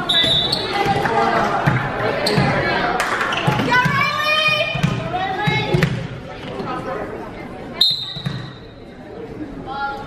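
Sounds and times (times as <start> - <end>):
voices in a gym: 0.0 - 10.0
referee whistle blast: 7.8 - 8.3.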